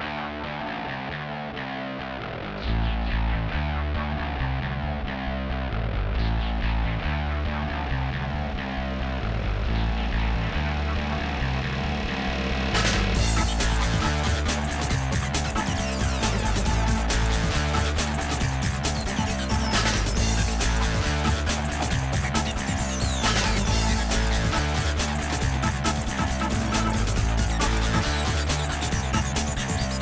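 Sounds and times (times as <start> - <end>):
driving music with guitar: 0.0 - 30.0
heavy bass line: 0.0 - 30.0.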